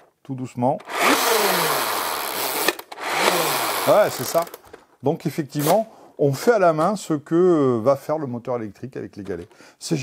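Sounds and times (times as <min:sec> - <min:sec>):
toy blaster flywheels whirring: 0:00.9 - 0:04.6.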